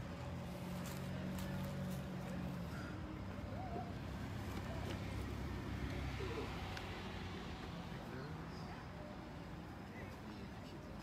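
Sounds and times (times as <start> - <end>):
faint distant voices: 0.0 - 11.0
road noise: 0.0 - 11.0
vehicle engine humming: 0.0 - 11.0.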